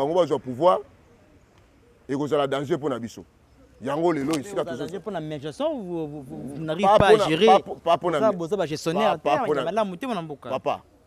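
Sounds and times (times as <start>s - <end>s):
man talking: 0.0s - 0.9s, 2.1s - 10.9s.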